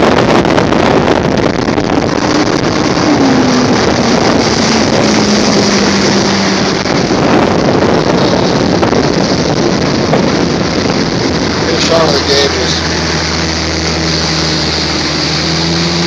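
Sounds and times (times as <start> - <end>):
outboard motor at speed: 0.0 - 16.0
water rushing past hull: 0.0 - 16.0
wind buffeting microphone: 0.0 - 16.0.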